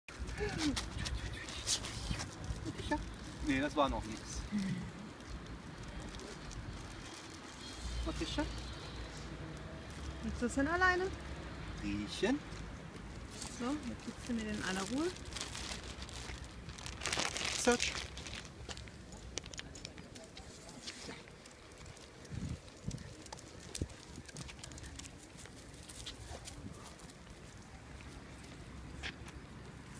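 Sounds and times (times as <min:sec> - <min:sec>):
footsteps on paved path: 0:12.3 - 0:29.9
wind rumble on microphone: 0:21.8 - 0:24.6.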